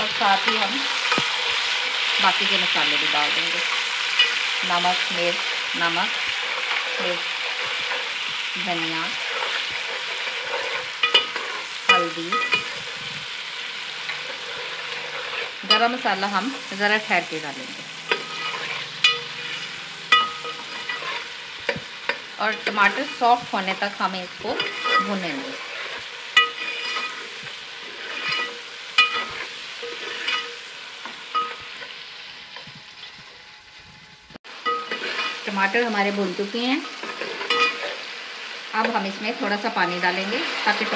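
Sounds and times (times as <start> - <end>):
vegetables sizzling in oil: 0.0 - 40.9
steel spoon stirring in pot: 0.4 - 17.1, 17.8 - 32.0, 34.6 - 35.8, 36.8 - 40.9
metal spoon clinking on pot: 11.0 - 12.7, 18.1 - 19.5, 26.4 - 27.2, 28.2 - 30.6, 31.3 - 31.6, 37.1 - 38.0.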